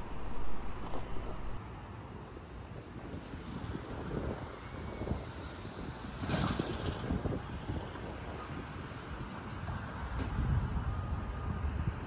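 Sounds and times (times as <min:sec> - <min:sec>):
wind buffeting microphone: 0:00.0 - 0:01.6.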